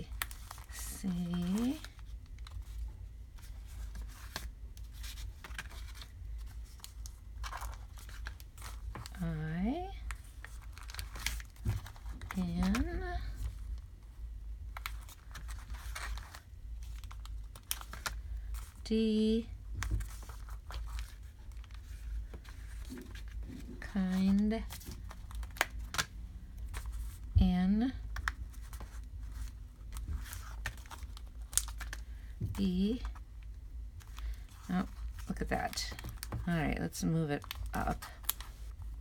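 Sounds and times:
paper rustling: 0:00.1 - 0:09.2, 0:19.8 - 0:26.1, 0:28.1 - 0:33.2.

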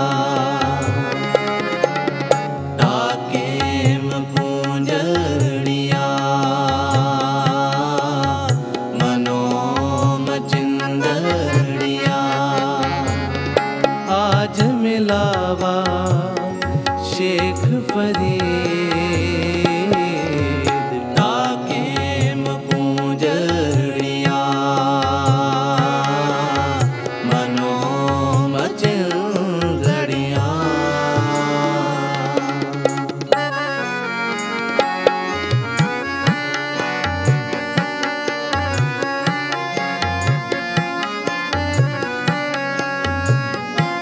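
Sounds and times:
harmonium tones: 0:00.0 - 0:44.0
man singing: 0:00.0 - 0:44.0
tabla strokes: 0:00.1 - 0:44.0.

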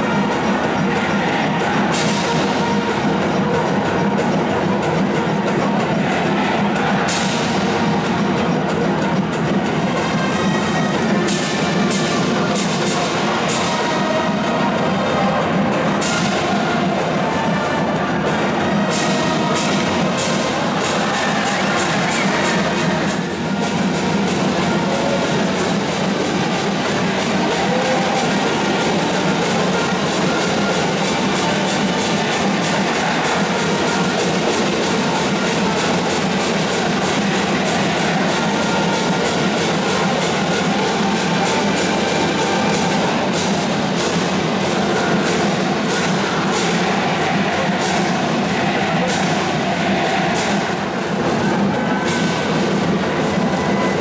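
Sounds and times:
drums beating time: 0:00.0 - 0:54.0.

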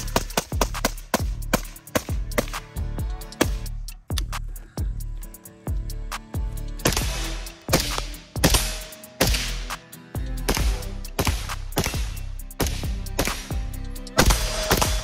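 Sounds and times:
background music with bass line: 0:00.0 - 0:15.0
rifle single shots: 0:06.8 - 0:09.7, 0:10.5 - 0:13.5, 0:14.2 - 0:15.0.

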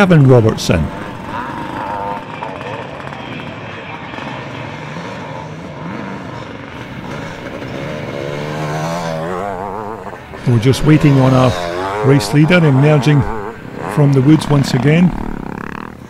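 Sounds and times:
motorcycle engines revving: 0:00.0 - 0:16.0.

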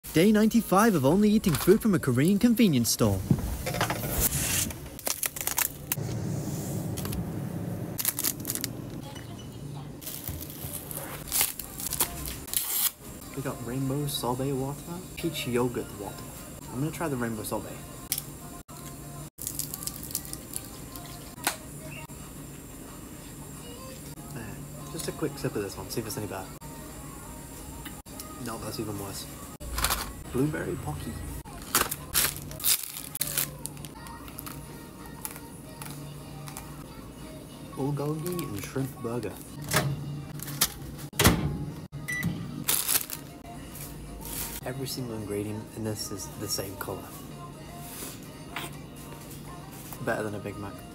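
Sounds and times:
microwave keypad beep: 0:42.0 - 0:42.4.

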